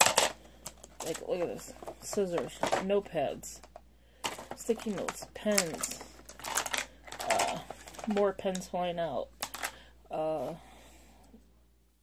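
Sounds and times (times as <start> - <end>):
stationery rattling in plastic case: 0.0 - 8.4.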